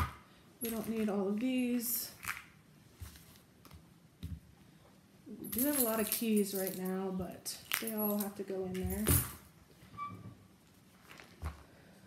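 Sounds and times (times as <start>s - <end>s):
metal keys clinking: 5.3s - 7.0s, 7.8s - 9.4s.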